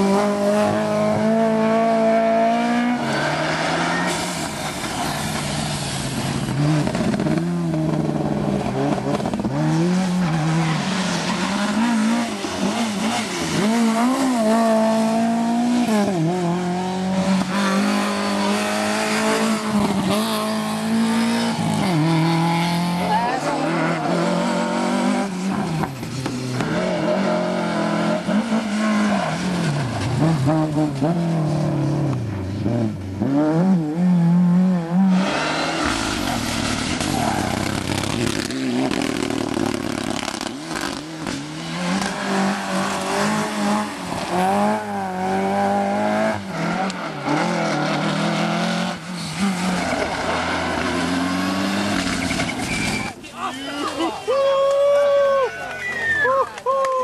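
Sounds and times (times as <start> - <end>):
rally car engines revving: 0.0 - 54.2.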